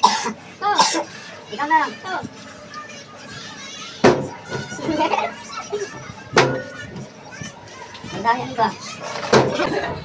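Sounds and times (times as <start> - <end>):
people talking and laughing: 0.0 - 10.0.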